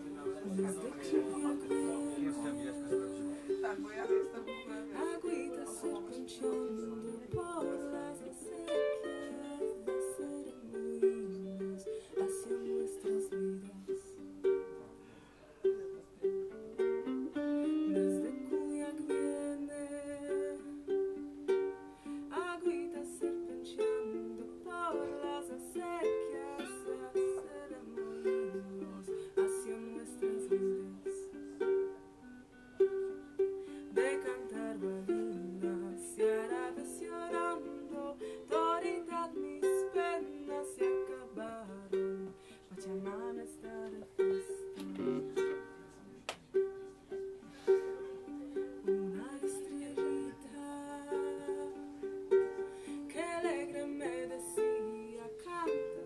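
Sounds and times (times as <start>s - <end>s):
ukulele plucked notes: 0.0s - 56.0s.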